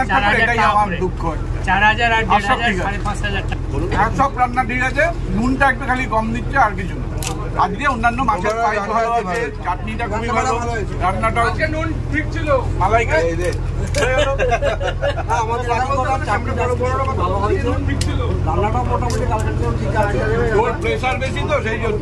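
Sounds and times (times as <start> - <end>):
boat engine drone: 0.0 - 22.0
people talking: 0.0 - 22.0.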